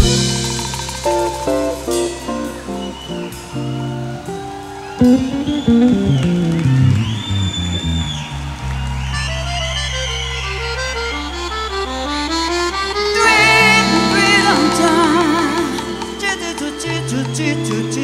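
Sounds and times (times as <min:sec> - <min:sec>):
live band playing: 0:00.0 - 0:18.0
wavering held note: 0:13.0 - 0:17.7.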